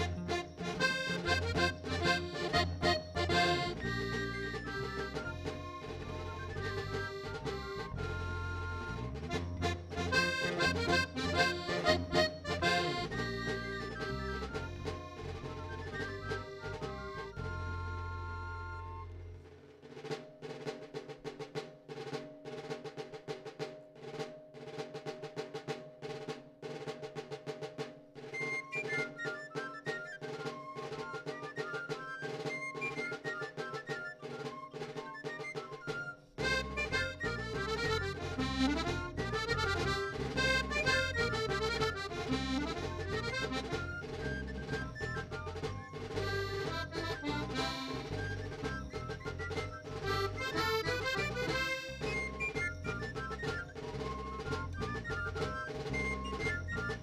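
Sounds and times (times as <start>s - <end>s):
steady percussion beat: 0.0s - 17.7s, 19.4s - 57.0s
live band music: 0.0s - 19.4s, 28.4s - 57.0s
bass: 0.0s - 19.5s, 36.4s - 57.0s.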